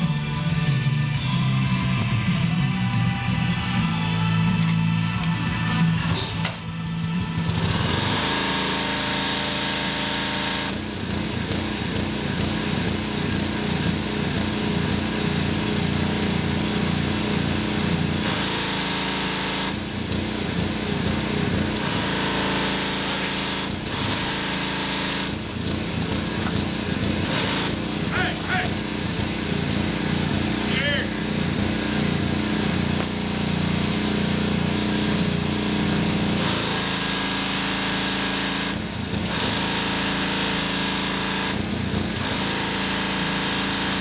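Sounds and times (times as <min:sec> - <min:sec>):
pressure washer engine running: 0:00.0 - 0:01.9, 0:03.8 - 0:44.0.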